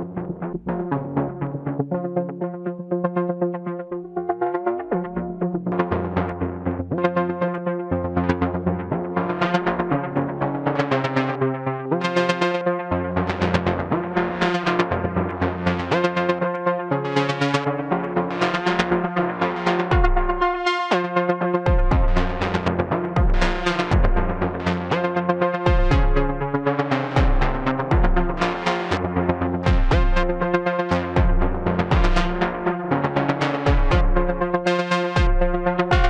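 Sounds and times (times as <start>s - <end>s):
synthesizer plucked notes sequence: 0.0s - 36.0s
deep kick drum: 19.9s - 20.4s, 21.7s - 22.5s, 23.2s - 24.5s, 25.7s - 26.4s, 27.2s - 28.4s, 29.7s - 30.5s, 31.2s - 32.4s, 33.7s - 34.4s, 35.2s - 36.0s
low synthesizer bass note: 21.7s - 24.9s, 27.2s - 32.6s, 35.2s - 36.0s.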